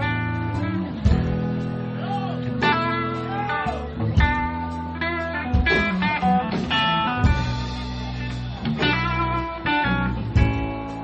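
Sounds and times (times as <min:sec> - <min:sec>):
guitar chords ringing: 0:00.0 - 0:11.0
guitar notes bending: 0:00.0 - 0:11.0.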